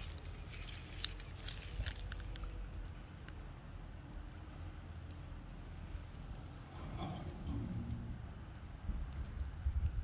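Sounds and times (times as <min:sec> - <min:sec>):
wind rumble on microphone: 0:06.1 - 0:10.0.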